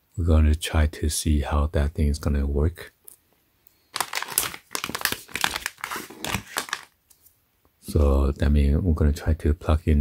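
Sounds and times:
plastic bags crinkling: 0:03.9 - 0:07.0.

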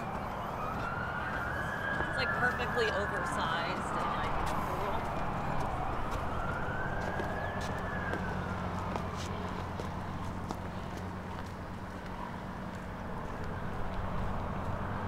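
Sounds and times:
siren wailing: 0:00.0 - 0:10.2.

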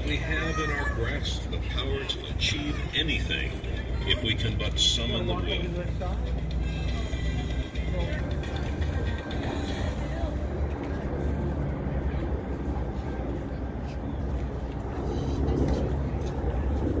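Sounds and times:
faint voices: 0:00.0 - 0:17.0.

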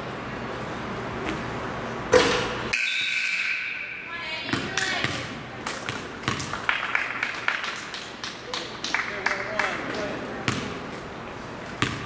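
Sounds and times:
basketball hitting rim: 0:04.4 - 0:06.5, 0:10.5 - 0:10.8, 0:11.8 - 0:12.0
basketball bouncing on wooden floor: 0:04.5 - 0:05.3, 0:05.9 - 0:06.5, 0:10.5 - 0:10.7, 0:11.8 - 0:12.0.

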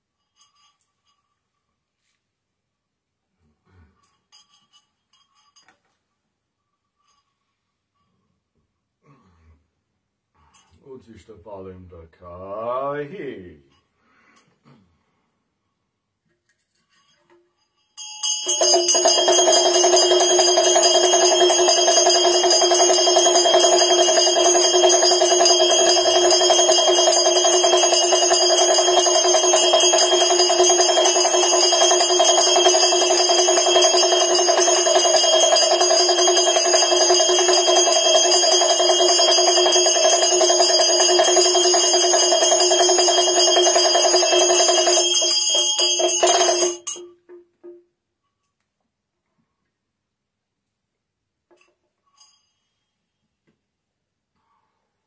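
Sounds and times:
ringing hand bell: 0:04.0 - 0:05.8, 0:16.9 - 0:47.3, 0:52.0 - 0:53.1
hand drum rattled rapidly: 0:18.4 - 0:47.0.

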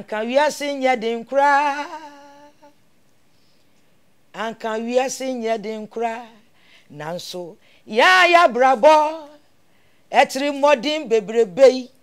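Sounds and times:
woman singing: 0:00.0 - 0:02.7, 0:04.4 - 0:09.4.

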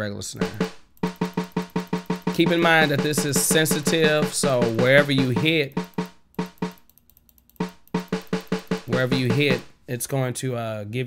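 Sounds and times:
snare drum hits: 0:00.4 - 0:06.9, 0:07.6 - 0:09.7.

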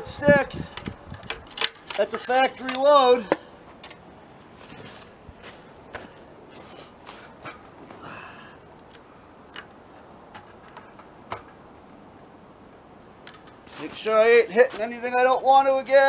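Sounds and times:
shotgun handling clicks and knocks: 0:00.7 - 0:04.1, 0:08.8 - 0:11.6, 0:13.2 - 0:13.6
footsteps in snow: 0:04.3 - 0:07.5, 0:13.6 - 0:15.1.

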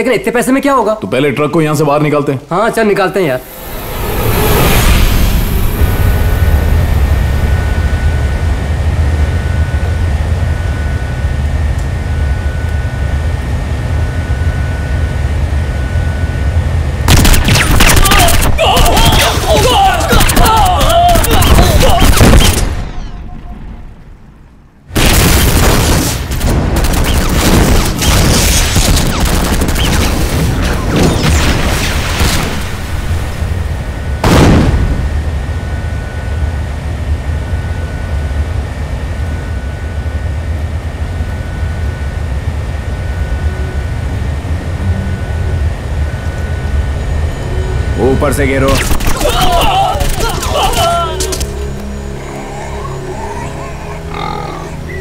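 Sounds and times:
steady rumble: 0:03.1 - 0:55.0
heavy explosion: 0:03.4 - 0:08.2, 0:24.9 - 0:35.4
gunfire bursts: 0:17.1 - 0:22.8
voices shouting: 0:17.9 - 0:22.3, 0:49.1 - 0:55.0.

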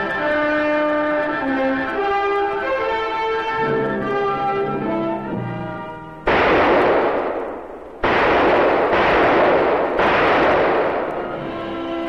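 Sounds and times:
brass orchestral music: 0:00.0 - 0:07.4, 0:09.1 - 0:12.0
gunshots with hissing tail: 0:06.2 - 0:12.0.

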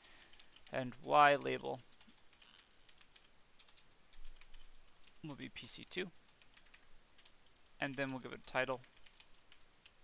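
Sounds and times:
computer keyboard typing: 0:00.0 - 0:10.0.

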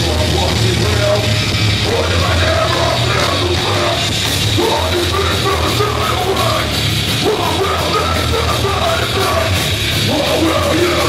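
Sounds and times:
bass guitar: 0:00.0 - 0:11.0
distorted guitars: 0:00.0 - 0:11.0
drums: 0:00.0 - 0:11.0
vocalist yelling into microphone: 0:01.9 - 0:11.0.

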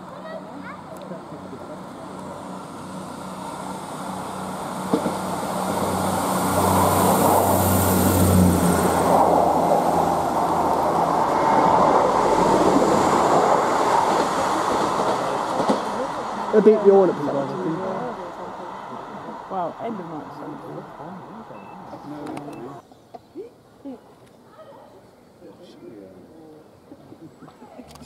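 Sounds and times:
diesel engines droning: 0:00.0 - 0:22.8
train wheels on rails: 0:00.6 - 0:22.8.

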